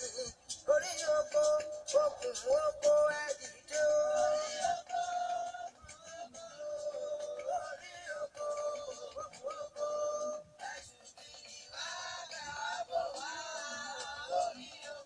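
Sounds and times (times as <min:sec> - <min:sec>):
person singing slow melody: 0:00.0 - 0:15.0.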